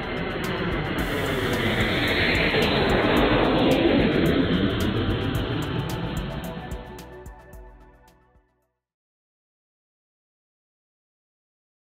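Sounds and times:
jet aircraft passing: 0:00.0 - 0:07.9.

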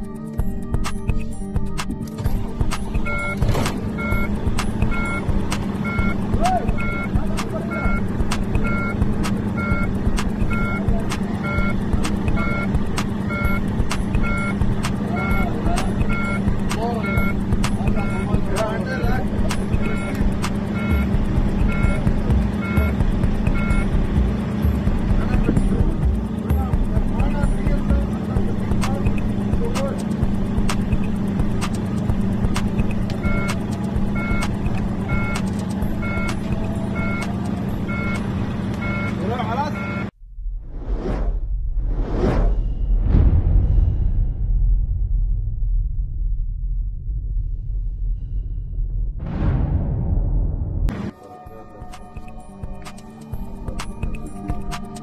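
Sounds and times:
dashboard warning chime beeping: 0:02.2 - 0:40.1, 0:51.1 - 0:55.0
diesel truck engine idling: 0:02.2 - 0:40.1.

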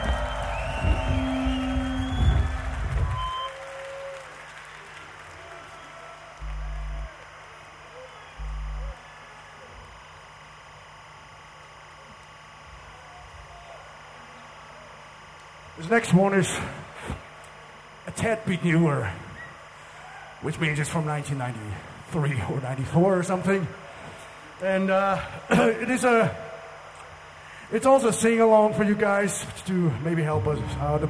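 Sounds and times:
crowd applause and cheering: 0:00.0 - 0:09.9.

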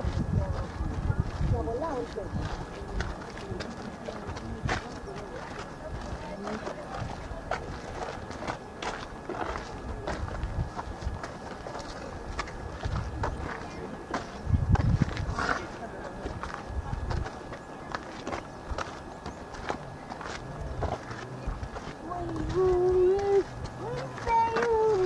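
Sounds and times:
indistinct background voices: 0:00.0 - 0:25.0.

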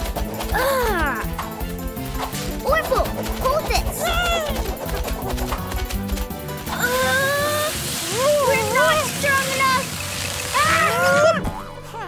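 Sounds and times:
cartoon background music: 0:00.0 - 0:12.0.

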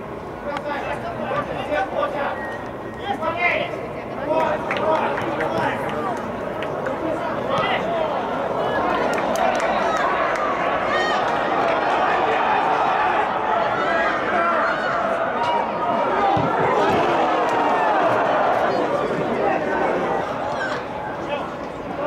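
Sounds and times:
crowd shouting and calling: 0:06.9 - 0:22.0.

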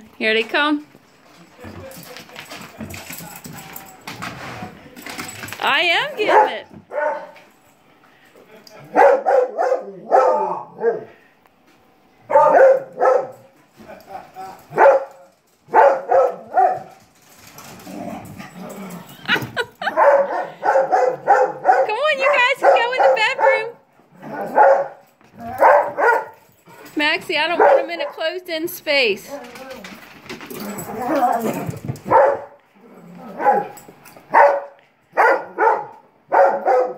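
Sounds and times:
dog barking: 0:06.2 - 0:07.4, 0:08.9 - 0:11.2, 0:12.3 - 0:13.5, 0:14.8 - 0:16.9, 0:19.8 - 0:26.4, 0:27.6 - 0:28.2, 0:32.1 - 0:32.6, 0:33.4 - 0:36.9.

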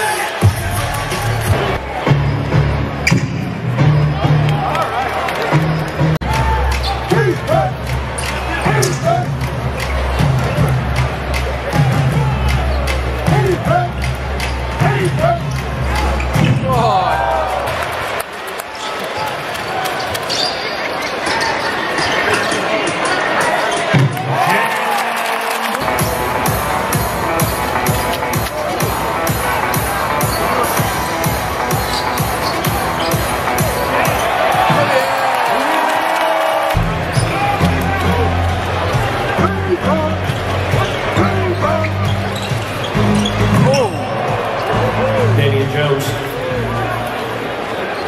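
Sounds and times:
crowd chatter: 0:00.0 - 0:48.0
arena music with bass line: 0:00.4 - 0:17.4, 0:36.8 - 0:45.8
sneakers squeaking: 0:02.1 - 0:04.2, 0:18.8 - 0:24.2, 0:29.3 - 0:35.3, 0:40.0 - 0:44.9
arena music with steady beat: 0:05.5 - 0:17.8, 0:25.8 - 0:35.0.

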